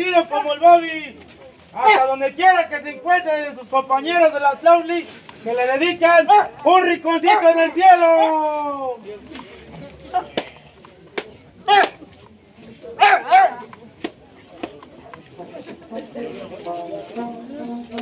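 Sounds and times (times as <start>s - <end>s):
quiet murmuring voices: 0.0s - 18.0s.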